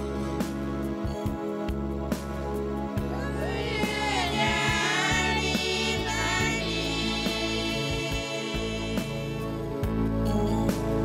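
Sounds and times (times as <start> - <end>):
women singing together: 3.2 - 9.7.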